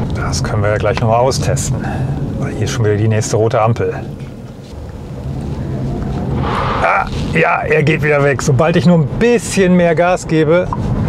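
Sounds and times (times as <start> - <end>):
low car cabin hum: 0.0 - 11.0.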